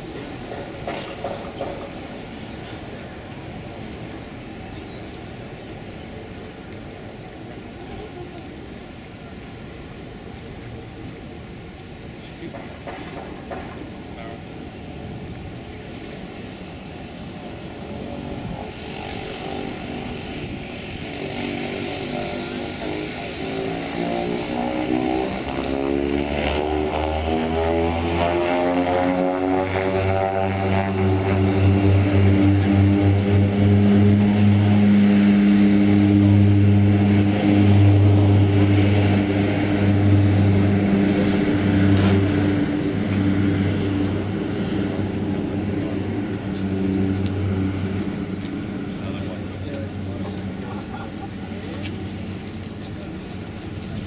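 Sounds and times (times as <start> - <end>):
turboprop propeller drone: 0.0 - 54.0.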